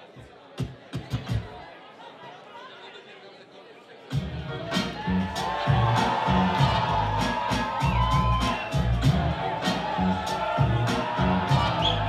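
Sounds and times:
hip-hop beat: 0:04.1 - 0:12.0.

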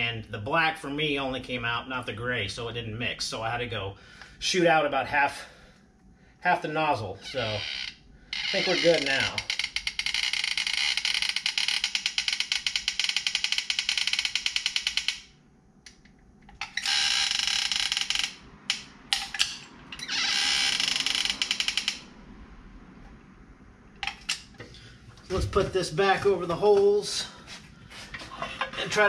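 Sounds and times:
dispensing gun rattling buzz: 0:08.4 - 0:15.4, 0:16.5 - 0:22.1.

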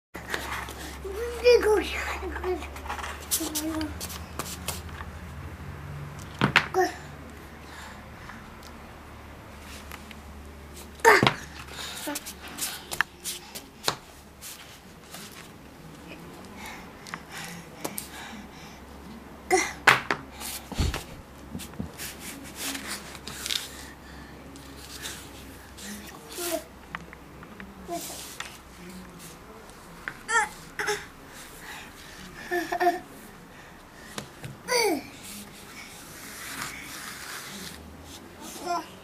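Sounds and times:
crawling on tiled floor: 0:10.8 - 0:18.2, 0:35.2 - 0:38.8.

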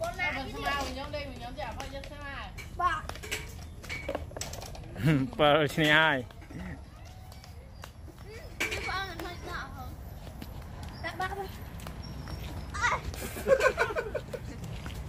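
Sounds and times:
light footsteps: 0:00.0 - 0:15.0.

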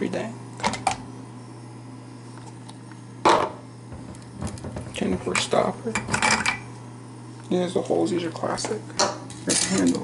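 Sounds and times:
thermos clunk on counter: 0:03.3 - 0:06.6.

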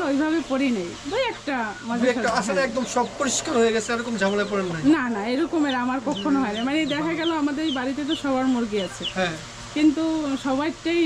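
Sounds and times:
chickens clucking: 0:00.0 - 0:10.6.

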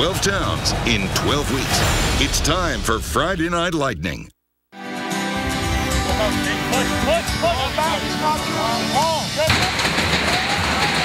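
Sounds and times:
melodic music: 0:04.8 - 0:09.5.

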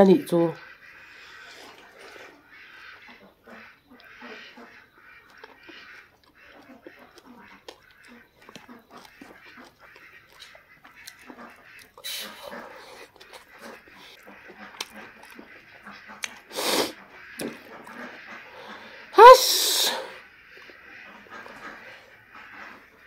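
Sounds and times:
ducks quacking: 0:00.4 - 0:23.0.

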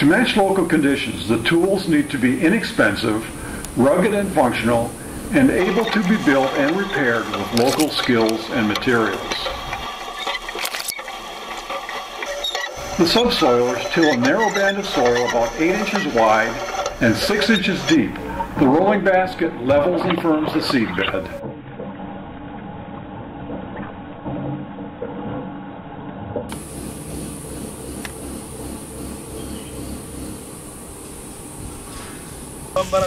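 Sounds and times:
steady high hiss: 0:00.0 - 0:21.4, 0:26.5 - 0:33.0
soil scraping and crackling: 0:02.8 - 0:18.7.

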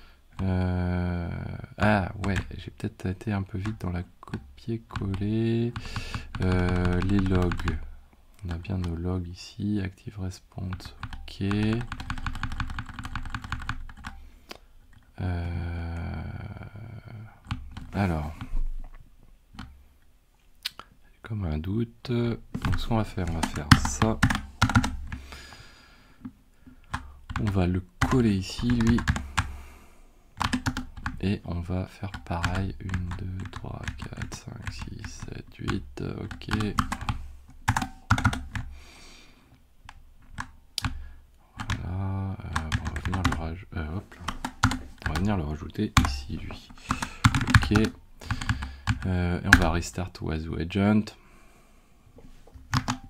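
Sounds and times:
computer keyboard keystrokes: 0:03.6 - 0:07.8, 0:10.7 - 0:14.2, 0:22.6 - 0:25.2, 0:26.8 - 0:29.5, 0:30.4 - 0:31.2, 0:36.2 - 0:38.7, 0:44.3 - 0:45.3, 0:46.9 - 0:49.7, 0:52.7 - 0:53.0.

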